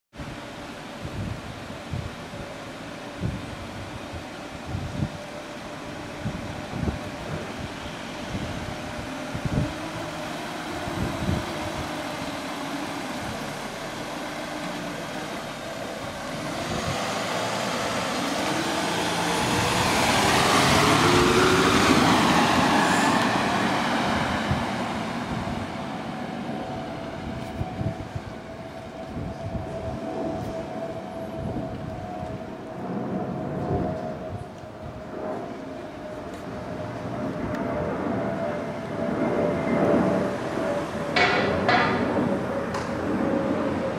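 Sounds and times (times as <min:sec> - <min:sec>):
wind buffeting microphone: 0:00.2 - 0:43.9
car driving past: 0:07.9 - 0:27.2.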